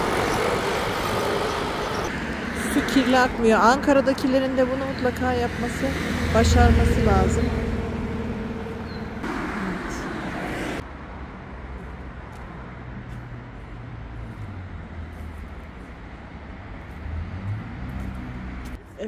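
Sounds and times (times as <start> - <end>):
hissy road rush: 0.0 - 18.9
vehicle engine rumble and hum: 0.0 - 19.0.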